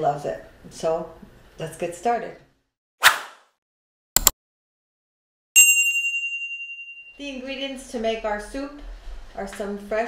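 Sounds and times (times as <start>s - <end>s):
notification bell ding: 5.6s - 7.2s.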